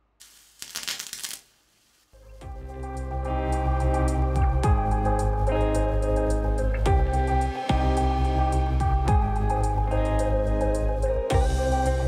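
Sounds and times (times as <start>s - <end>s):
chemical crackling and sputtering burst: 0.0s - 2.1s.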